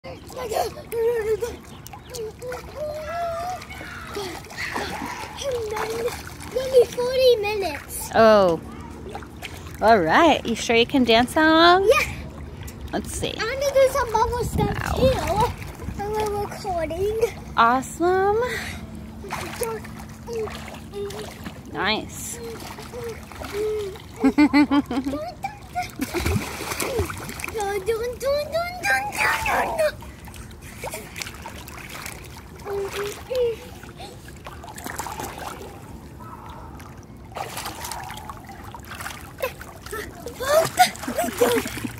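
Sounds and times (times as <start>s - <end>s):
child's voice: 0.0s - 8.1s, 11.7s - 12.2s, 13.2s - 17.6s, 18.2s - 21.4s, 22.2s - 24.0s, 25.0s - 26.0s, 26.9s - 30.0s, 32.6s - 34.2s
pool water splashing: 0.0s - 41.9s.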